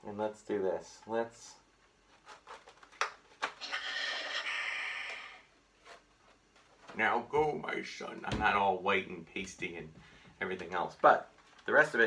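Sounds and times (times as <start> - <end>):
breathy hiss: 3.6 - 5.5.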